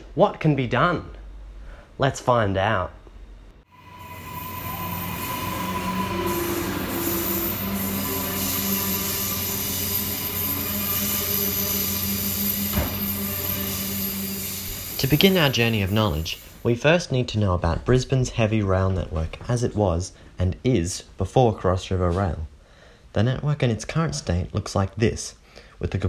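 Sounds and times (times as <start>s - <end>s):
squealing and whining tones: 3.7s - 16.6s.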